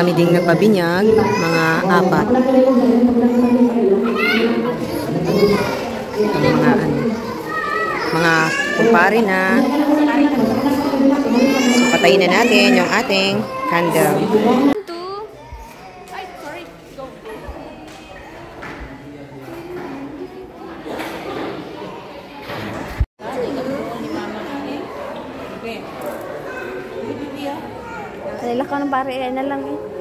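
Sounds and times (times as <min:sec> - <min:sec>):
people talking: 0:00.0 - 0:15.3
children's voices: 0:00.0 - 0:30.0.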